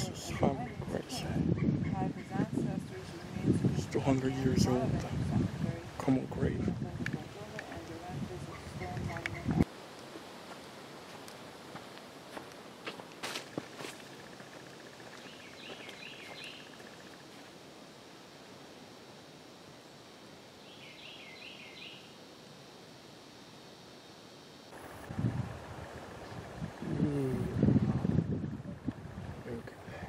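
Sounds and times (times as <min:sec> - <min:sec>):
steady hiss: 0:09.6 - 0:28.0
footsteps in dry leaves: 0:10.4 - 0:14.2.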